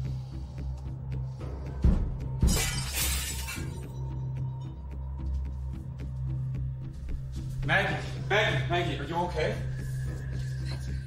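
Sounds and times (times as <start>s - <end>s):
glass shattering: 2.4s - 3.8s.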